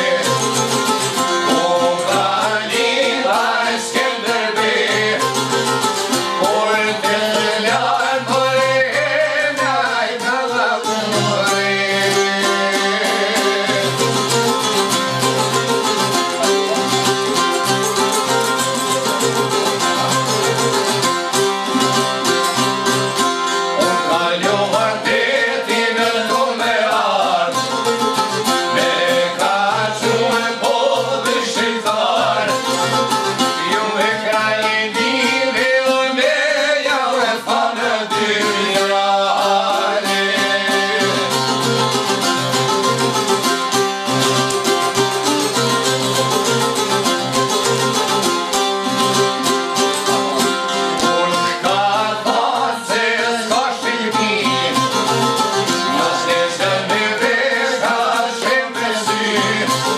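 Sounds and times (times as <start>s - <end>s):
man singing: 0.0s - 15.0s, 23.5s - 42.3s, 50.0s - 59.9s
plucked lutes strumming: 0.0s - 59.9s.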